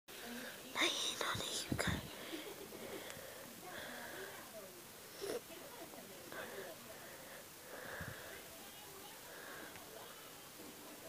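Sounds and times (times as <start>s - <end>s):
person whispering: 0.7s - 2.3s.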